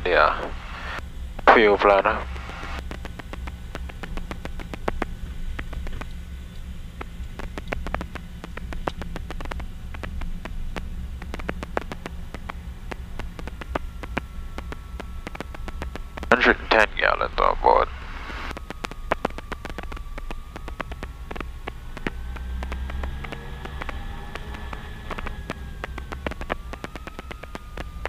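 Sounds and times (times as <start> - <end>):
twin piston engines droning: 0.0 - 28.0
sharp irregular clicks: 0.1 - 28.0.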